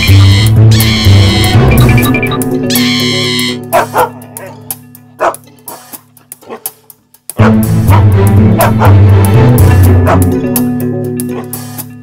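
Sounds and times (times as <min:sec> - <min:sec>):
background music with low notes: 0:00.0 - 0:12.0
dog barks and yips: 0:03.7 - 0:05.4, 0:08.6 - 0:08.9.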